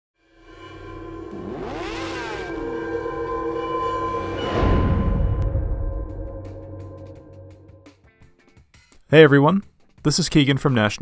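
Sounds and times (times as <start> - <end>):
held music tones: 0.4 - 7.9
rising and falling sweeping sounds: 0.5 - 7.8.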